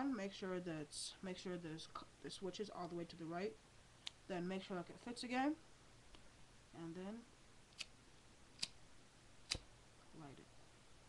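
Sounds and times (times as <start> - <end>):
lighter clicking: 8.6 - 8.8.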